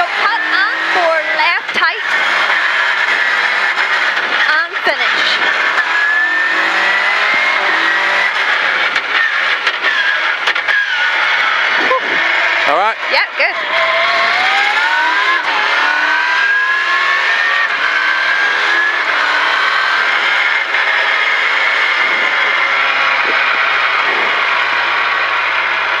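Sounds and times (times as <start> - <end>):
car engine accelerating: 0.0 - 26.0
road and tyre noise: 0.0 - 26.0.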